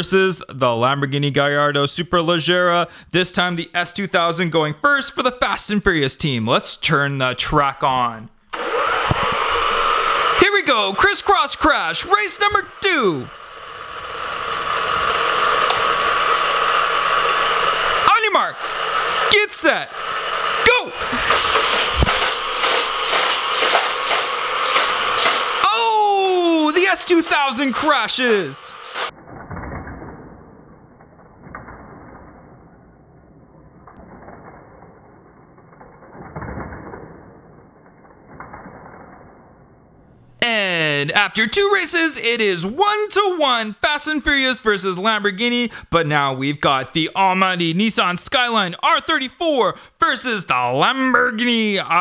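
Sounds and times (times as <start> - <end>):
electric motor whirring: 8.5 - 29.1
toy cars rattling on plastic track: 10.4 - 13.4, 21.0 - 29.1
sharp clicks: 15.6 - 17.1.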